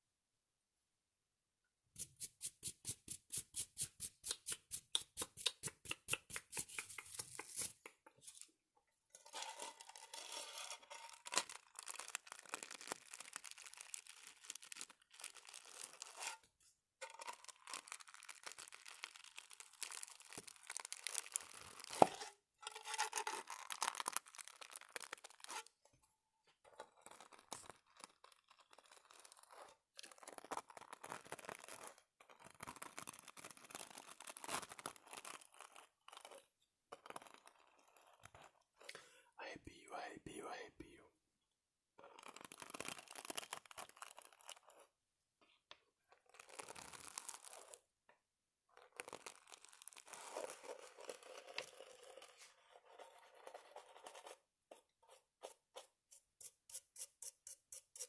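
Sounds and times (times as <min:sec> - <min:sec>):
stiff brush scratching: 0:02.0 - 0:08.4.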